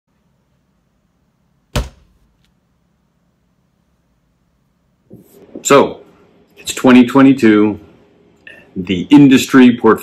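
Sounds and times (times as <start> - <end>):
faint low hum: 0.1 - 10.0
loud thump: 1.7 - 2.2.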